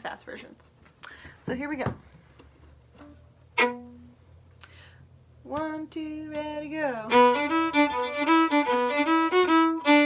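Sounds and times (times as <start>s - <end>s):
fiddle note: 3.0s - 4.2s, 7.1s - 10.0s.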